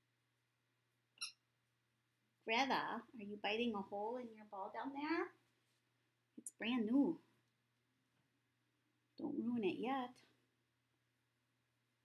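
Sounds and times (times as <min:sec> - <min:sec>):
squeaky dog toy squeak: 0:01.2 - 0:01.4.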